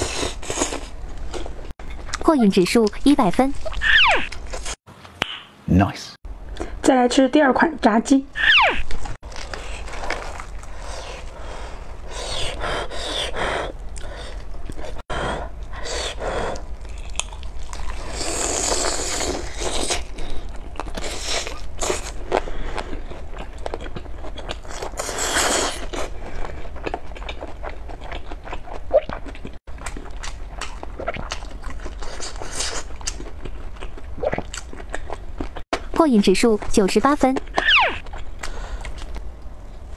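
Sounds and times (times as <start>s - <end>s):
crunchy chewing of fried chicken: 9.3s - 12.5s, 16.5s - 35.6s.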